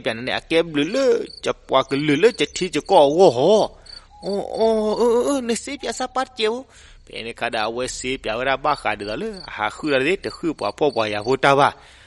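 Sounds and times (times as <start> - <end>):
man's held aw sound: 0.8 - 6.9, 8.8 - 11.0
man's wobbling vocal oh: 4.2 - 6.0.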